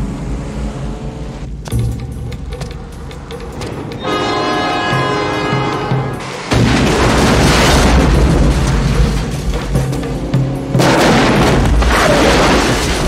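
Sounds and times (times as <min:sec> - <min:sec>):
dramatic action film score: 0:00.0 - 0:13.0
sustained horn-like chord: 0:04.0 - 0:06.4
large explosion: 0:06.5 - 0:09.7.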